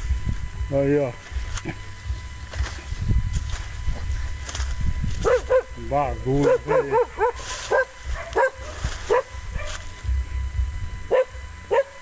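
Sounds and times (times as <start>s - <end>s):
low rumble on microphone: 0.0s - 11.7s
footsteps on dry leaves: 0.0s - 11.9s.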